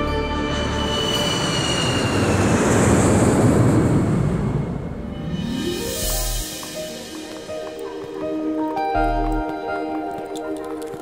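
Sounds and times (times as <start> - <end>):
music: 0.0 - 2.6, 4.9 - 11.0
jet airliner roaring overhead: 0.0 - 9.0.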